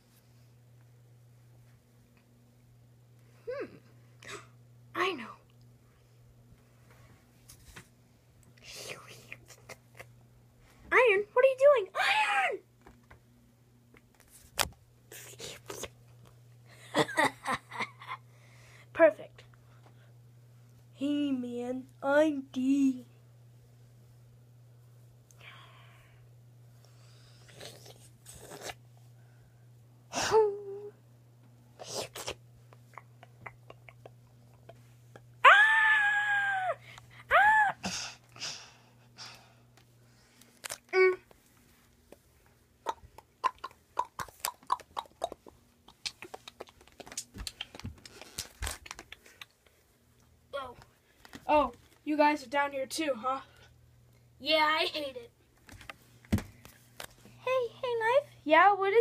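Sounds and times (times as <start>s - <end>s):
person screaming: 12.0s - 12.6s, 35.4s - 38.0s.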